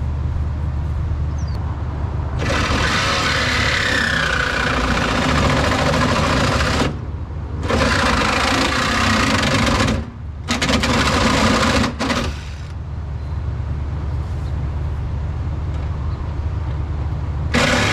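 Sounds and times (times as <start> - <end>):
reciprocating saw cutting steel: 2.4 - 7.0, 17.5 - 17.9.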